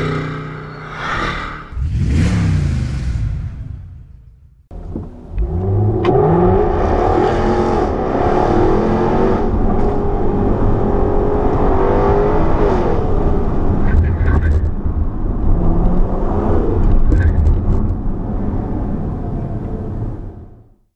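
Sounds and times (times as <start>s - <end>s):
racing car engines revving: 0.0s - 20.3s.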